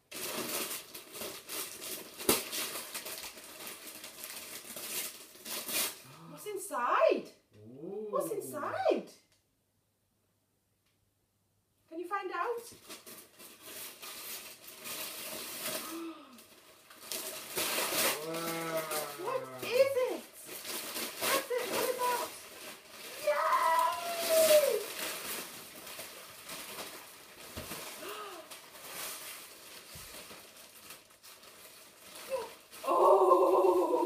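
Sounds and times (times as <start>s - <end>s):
wrapping paper crinkling and tearing: 0.0s - 6.3s, 12.7s - 34.0s
short wordless vocal sounds: 7.5s - 8.8s.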